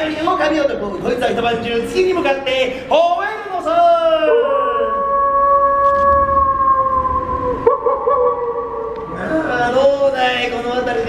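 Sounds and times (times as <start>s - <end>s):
man howling like a wolf: 4.2s - 9.7s.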